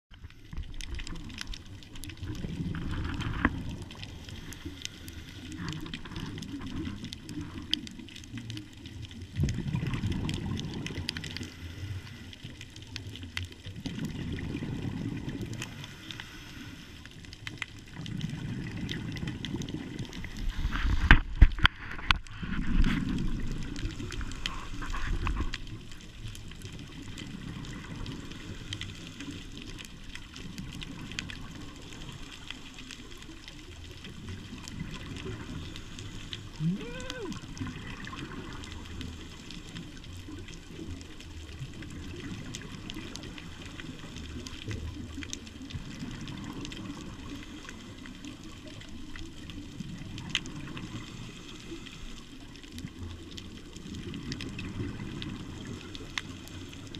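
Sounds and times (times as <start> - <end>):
diver's bubbles gurgling: 0.1 - 56.9.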